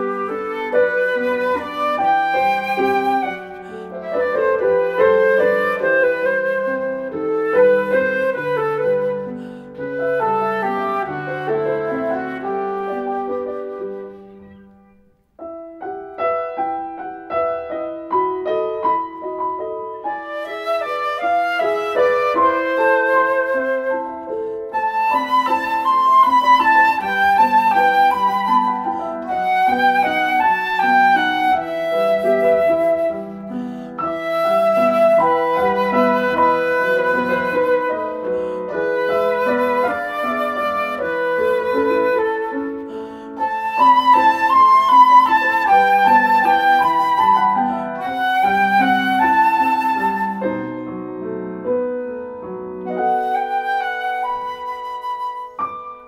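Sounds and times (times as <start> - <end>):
flute melody: 0.0 - 56.0
piano accompaniment: 0.0 - 56.0.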